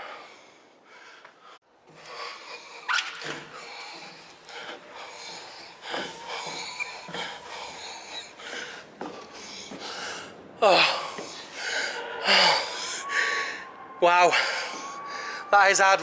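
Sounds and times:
hard breathing: 0.0s - 15.5s.

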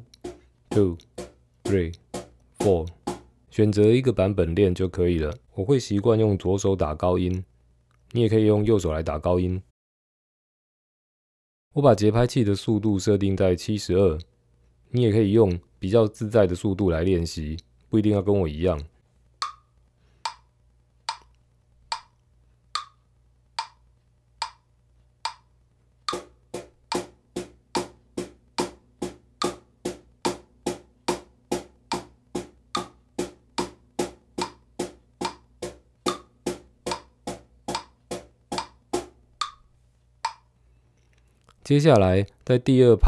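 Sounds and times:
metronome clicking: 0.0s - 1.2s, 19.4s - 25.5s, 26.1s - 27.1s, 29.4s - 29.7s, 31.8s - 38.8s, 39.4s - 40.5s
cajon strokes: 0.0s - 3.3s, 26.1s - 39.2s.

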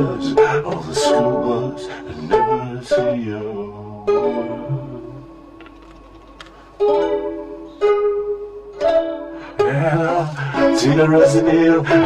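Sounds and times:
person singing: 0.0s - 5.6s, 8.8s - 12.0s
ukulele chords strummed: 0.0s - 12.0s.

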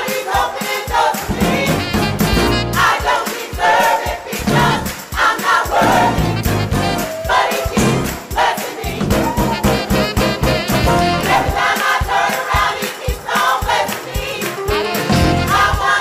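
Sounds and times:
gospel choir singing: 0.0s - 16.0s
steady regular beat: 0.0s - 16.0s.

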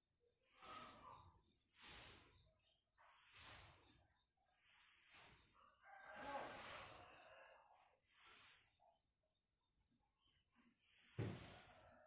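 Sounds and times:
rooster crowing faintly: 5.6s - 8.3s.

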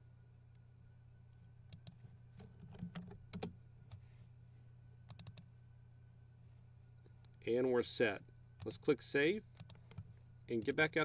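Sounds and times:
low steady hum: 0.0s - 11.0s
computer clicking: 1.7s - 4.0s, 5.0s - 5.5s, 9.5s - 10.8s.

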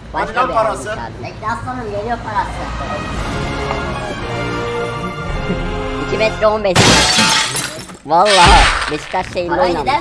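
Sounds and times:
background music: 2.4s - 7.8s.

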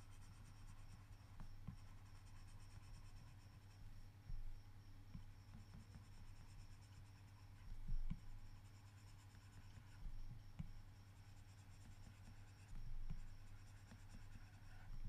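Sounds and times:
steady low hum: 0.0s - 15.0s
stylus tapping on tablet screen: 7.7s - 8.5s.

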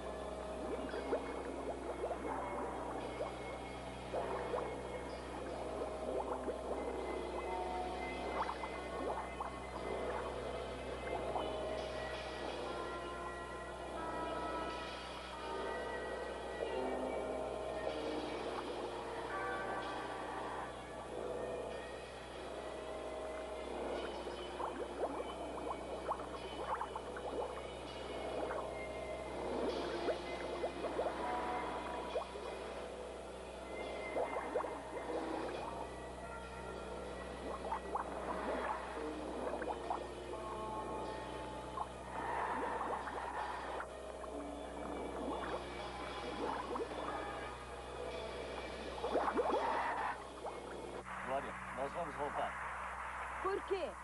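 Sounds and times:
film score held tones: 0.0s - 54.0s
underwater bubbling: 0.0s - 54.0s.

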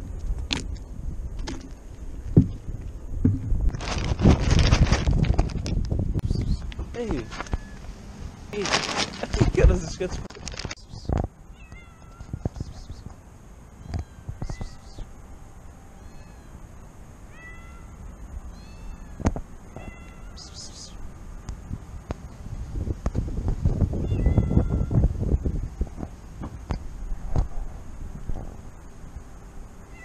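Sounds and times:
low rumbling noise: 0.0s - 11.5s, 20.4s - 30.0s
cats meowing: 10.4s - 13.1s, 13.8s - 15.1s, 16.0s - 16.6s, 17.3s - 21.0s, 24.0s - 25.0s.

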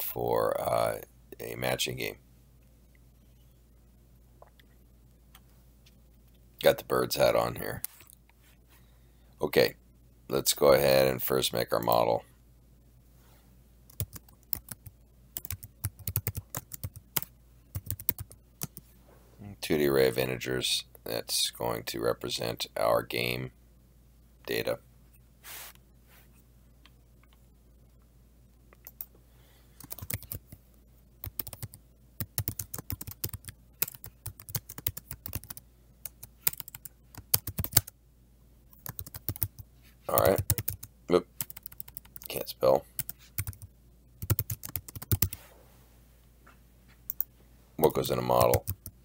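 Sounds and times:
typing on computer keyboard: 13.9s - 18.8s, 29.8s - 30.6s, 31.2s - 37.9s, 38.8s - 39.6s, 40.2s - 42.4s, 43.0s - 45.4s, 48.4s - 49.0s.

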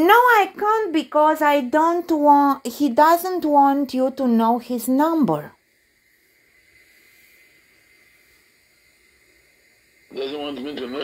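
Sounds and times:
phone line hiss: 7.0s - 11.0s.

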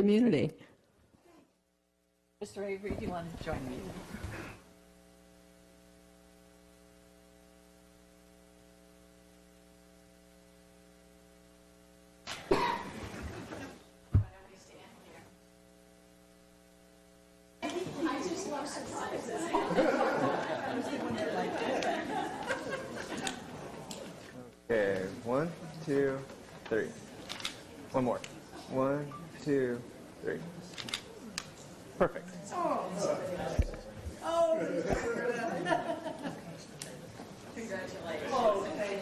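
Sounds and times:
electrical mains hum: 0.0s - 39.0s
indistinct chatter of people: 17.6s - 39.0s.

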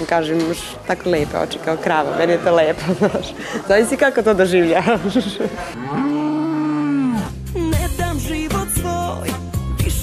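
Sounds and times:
cow mooing: 5.7s - 7.5s.

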